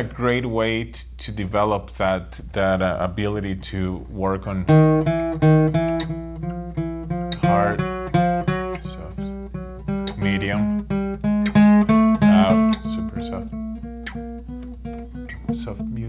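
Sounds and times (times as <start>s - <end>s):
acoustic guitar picked notes: 3.6s - 16.0s.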